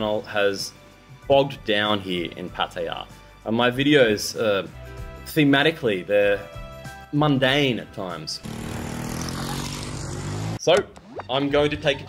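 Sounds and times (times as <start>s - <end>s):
small motorcycle engines running: 8.4s - 10.6s.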